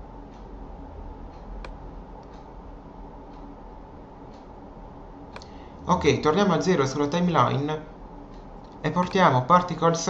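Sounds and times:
faint regular ticking: 0.0s - 10.0s
low background hum: 0.0s - 10.0s
sharp click: 5.3s - 5.5s.

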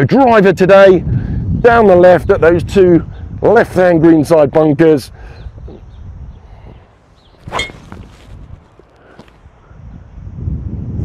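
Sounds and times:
faint outdoor background noise: 0.0s - 11.0s
golf club striking ball: 7.4s - 8.0s.

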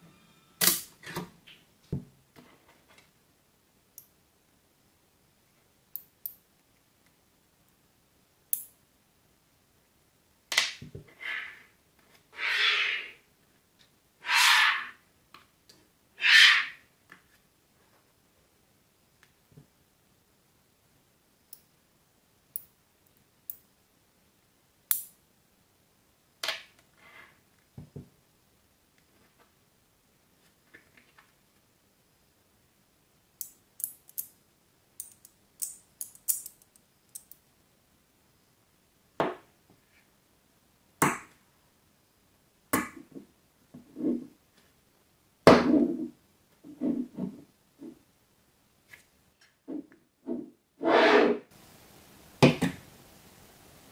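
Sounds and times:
magnetic balls snapping together: 24.9s - 25.2s, 35.0s - 37.4s.

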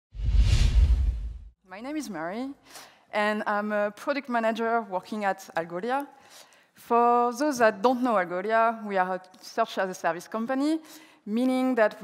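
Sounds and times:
loud whoosh: 0.1s - 1.5s
deep low rumble: 0.2s - 1.5s.

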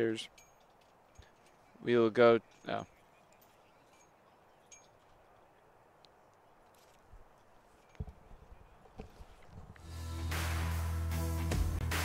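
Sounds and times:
music: 9.8s - 12.0s.

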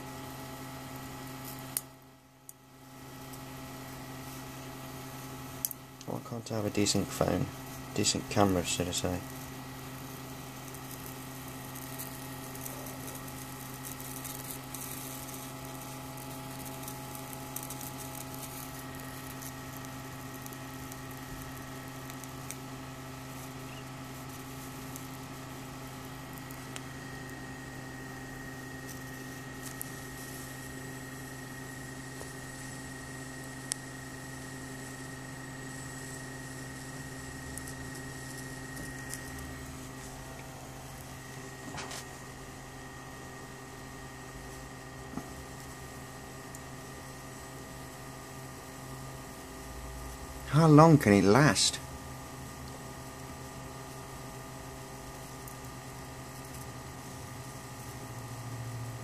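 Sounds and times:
high-voltage discharge hiss and crackle: 0.0s - 43.2s, 43.8s - 59.0s
sharp electrical snaps: 0.0s - 43.3s, 44.2s - 59.0s
steady electrical hum: 0.0s - 59.0s.

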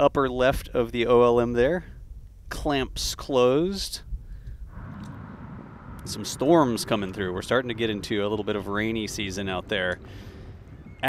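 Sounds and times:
low rumble: 4.2s - 11.0s.

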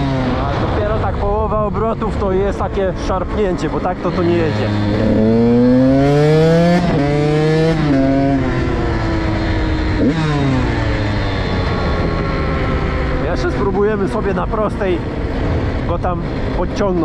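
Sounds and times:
two-stroke engine accelerating: 0.0s - 17.0s.

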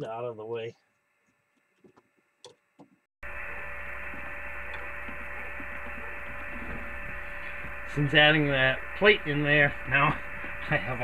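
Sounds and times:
electrical mains hum with hiss: 3.2s - 11.0s.

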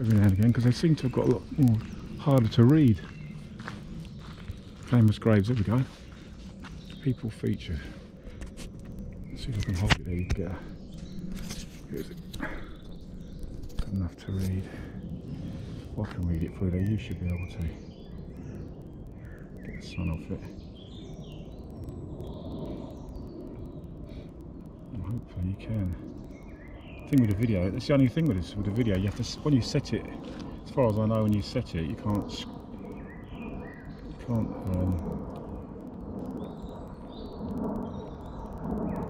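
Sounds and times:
faint bird chirps: 0.0s - 39.0s
steady low rumble: 0.0s - 39.0s.

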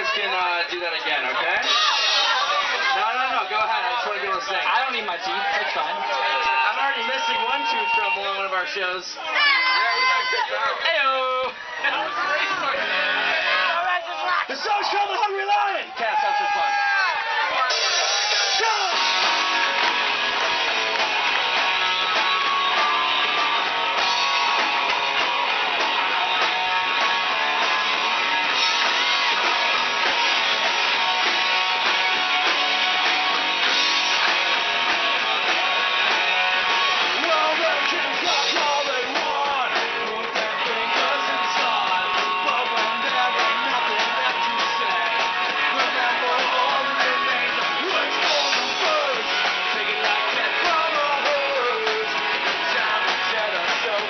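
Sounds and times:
rock band playing: 0.0s - 54.0s.

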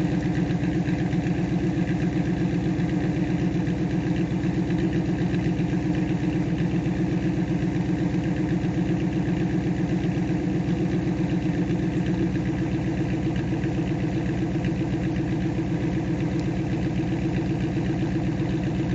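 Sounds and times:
car engine idling: 0.0s - 18.9s.

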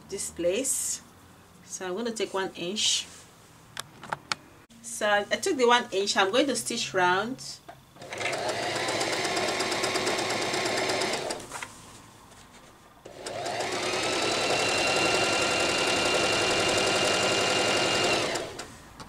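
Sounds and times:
sewing machine stitching: 8.0s - 11.4s, 13.1s - 18.8s.

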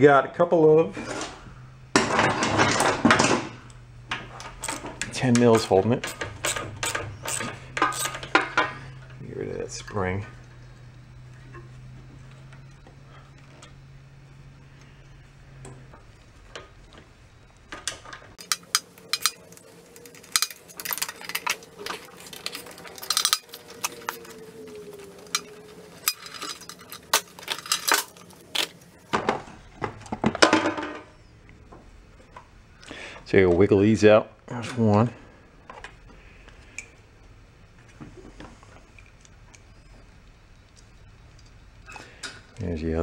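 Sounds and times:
metal tools clinking: 18.4s - 24.5s, 25.2s - 28.8s.

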